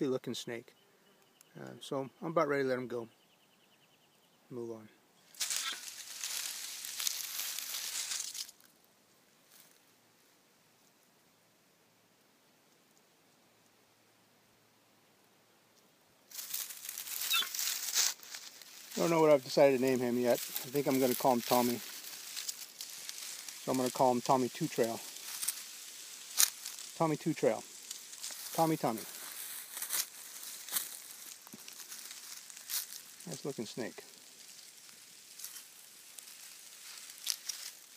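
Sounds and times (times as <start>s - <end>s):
steady high hiss: 4.6s - 37.9s
dry leaves crackling and rustling: 5.3s - 8.7s, 16.3s - 37.9s.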